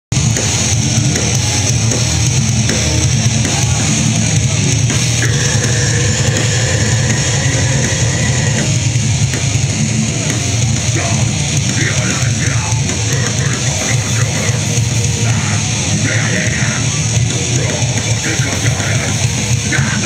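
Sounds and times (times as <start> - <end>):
distorted electric guitars: 0.0 - 20.0
drum kit: 0.1 - 20.0.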